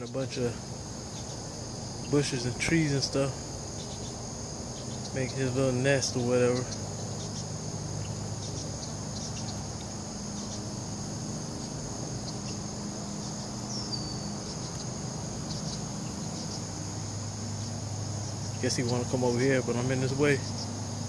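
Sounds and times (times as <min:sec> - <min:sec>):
insects calling: 0:00.0 - 0:21.0
low steady hum: 0:00.0 - 0:21.0.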